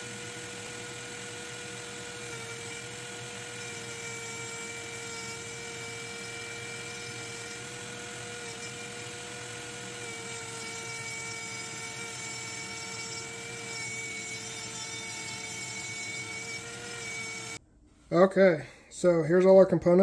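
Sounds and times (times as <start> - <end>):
rotary tool grinding whine: 0.0 - 17.6.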